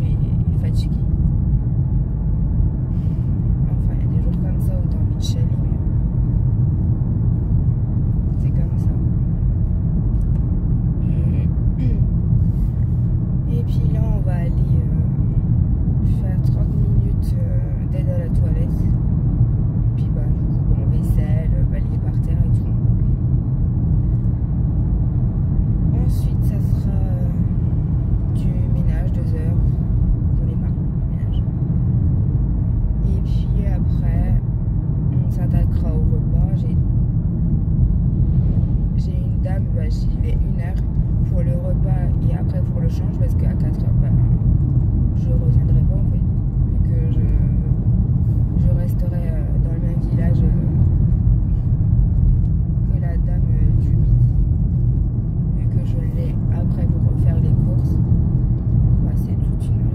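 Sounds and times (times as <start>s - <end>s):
car cabin road and engine rumble: 0.0s - 59.9s.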